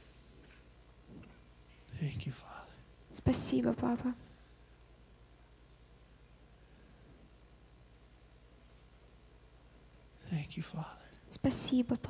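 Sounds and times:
man speaking softly: 0:01.9 - 0:02.8, 0:10.2 - 0:11.2.

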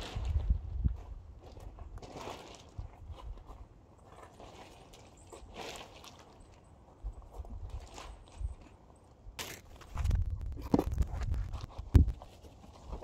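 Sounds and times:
footsteps on gravel: 0:09.6 - 0:12.2.

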